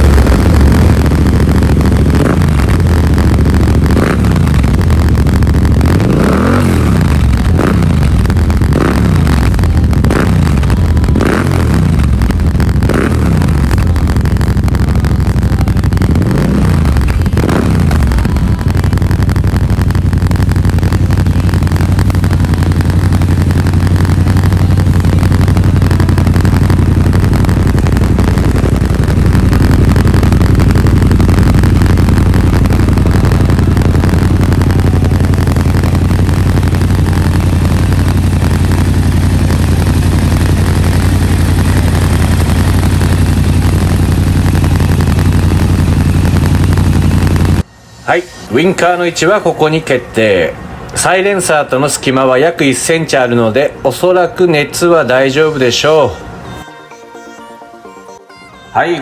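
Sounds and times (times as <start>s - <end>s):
motorcycle engine idling: 0.0s - 47.8s.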